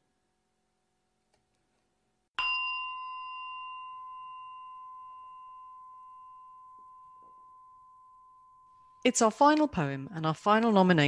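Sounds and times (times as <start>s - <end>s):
bell-like chime: 2.4s - 9.0s.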